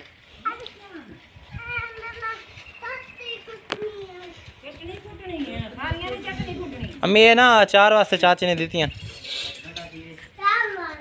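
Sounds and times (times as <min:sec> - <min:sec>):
child's high-pitched call: 0:00.5 - 0:04.5, 0:10.4 - 0:11.0.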